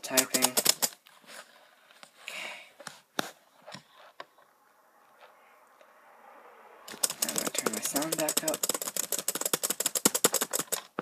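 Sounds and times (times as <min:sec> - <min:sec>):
keyboard keys clicking: 0:00.0 - 0:01.0, 0:06.9 - 0:10.9
soft rustle: 0:01.0 - 0:04.5
fast speech: 0:07.2 - 0:08.6.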